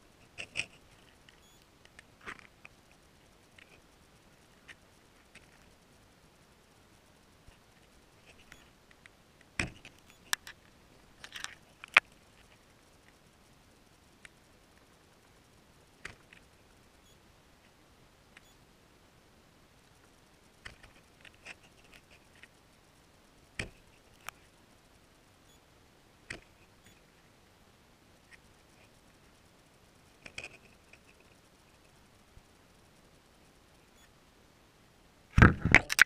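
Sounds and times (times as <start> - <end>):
faint steady hiss: 0.0 - 36.0.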